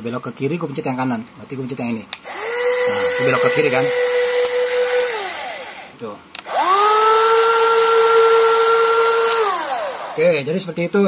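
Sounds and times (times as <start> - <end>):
electric motor whining: 2.2 - 10.5.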